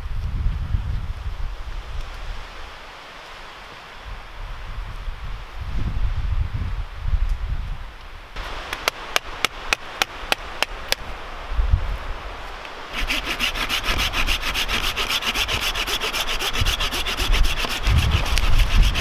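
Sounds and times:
wind gusting on microphone: 0.0 - 19.0
hand saw cutting wood: 13.0 - 19.0.

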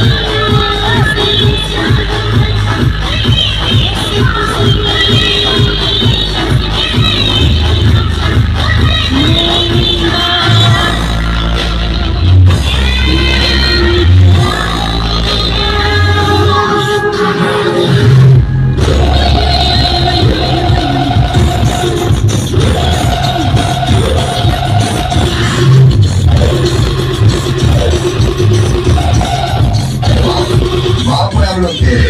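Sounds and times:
dj music with heavy bass: 0.0 - 32.0.

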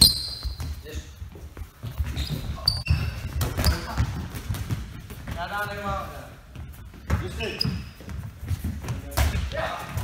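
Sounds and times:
sneakers squeaking on floor: 0.0 - 10.0.

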